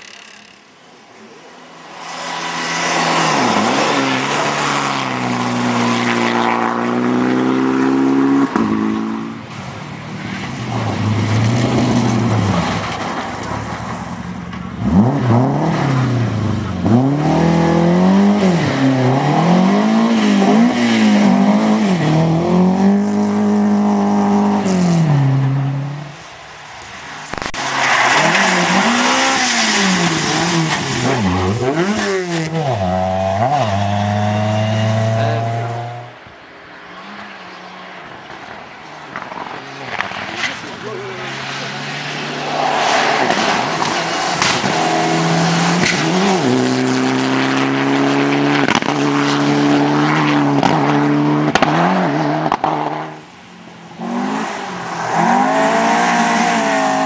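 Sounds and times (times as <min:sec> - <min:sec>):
rally car engines revving: 0:00.0 - 0:57.0
tyre and road noise: 0:00.0 - 0:57.0.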